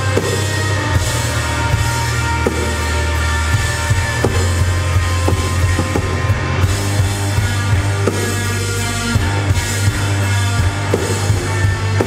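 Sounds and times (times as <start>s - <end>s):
drum kit hits: 0.0s - 12.0s
electric guitar: 0.0s - 12.0s
heavy sustained bass line: 0.0s - 12.0s.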